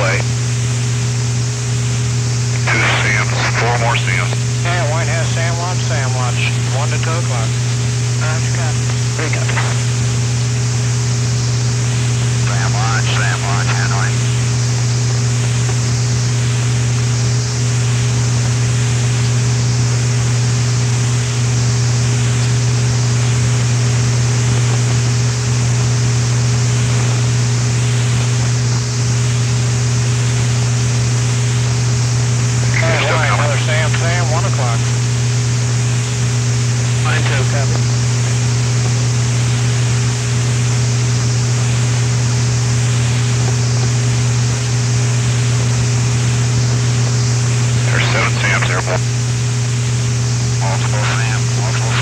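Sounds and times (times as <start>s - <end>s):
radio voice: 0.0s - 0.4s, 2.4s - 10.1s, 12.3s - 14.6s, 32.5s - 35.0s, 36.8s - 38.4s, 47.6s - 49.5s, 50.2s - 52.0s
tape hum and hiss: 0.0s - 52.0s.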